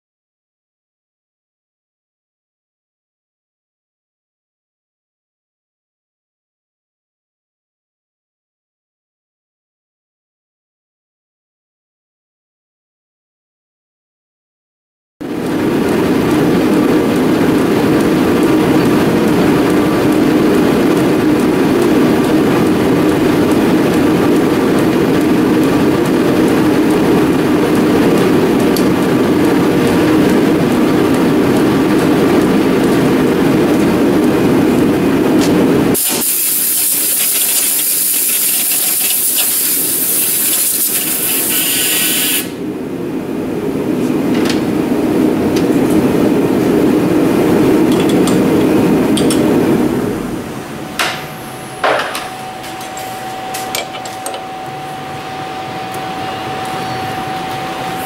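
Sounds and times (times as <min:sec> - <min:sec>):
metal lathe running: 0:15.2 - 0:58.0
loud high hiss: 0:36.0 - 0:42.6.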